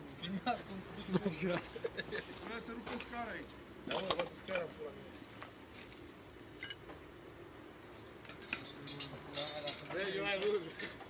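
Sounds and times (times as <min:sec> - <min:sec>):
clinking of broken roof tiles: 0:08.3 - 0:11.0.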